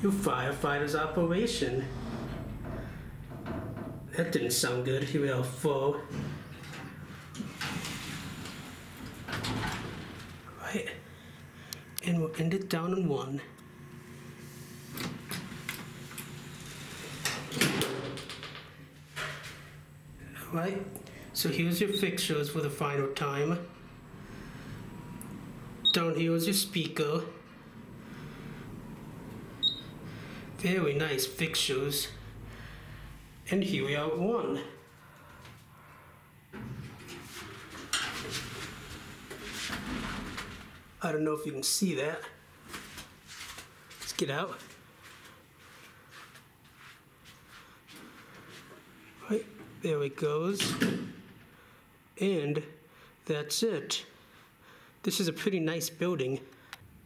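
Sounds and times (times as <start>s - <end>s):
elevator doors sliding shut: 0.0s - 4.8s, 6.1s - 10.5s, 14.8s - 18.5s, 20.1s - 26.6s, 27.3s - 33.2s, 36.5s - 41.0s
elevator motor hum: 0.0s - 4.9s, 5.5s - 10.6s, 13.6s - 18.0s, 19.0s - 41.0s
elevator door rattle: 0.8s - 4.3s, 6.1s - 10.5s.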